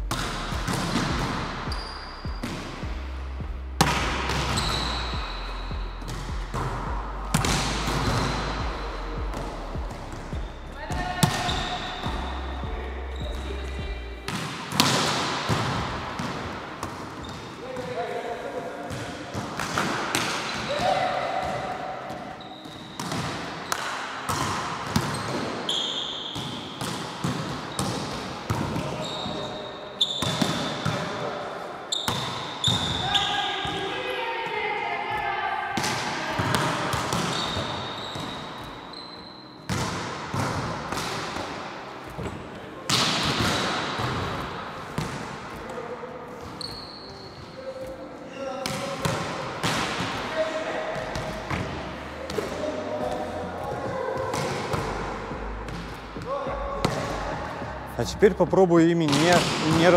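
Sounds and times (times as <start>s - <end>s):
volleyballs being struck: 0.0s - 3.2s, 3.8s - 5.3s, 6.0s - 12.4s, 14.2s - 17.6s, 59.1s - 59.9s
balls bouncing on wooden floor: 0.0s - 17.5s.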